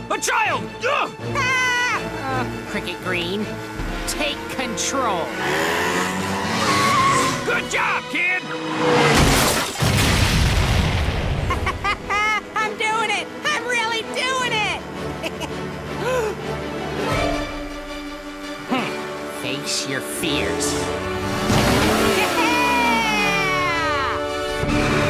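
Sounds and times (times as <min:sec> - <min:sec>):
background music: 0:00.0 - 0:25.0
cartoon boy yelling: 0:00.9 - 0:02.2, 0:22.1 - 0:24.3
cartoon explosion boom: 0:09.2 - 0:11.6.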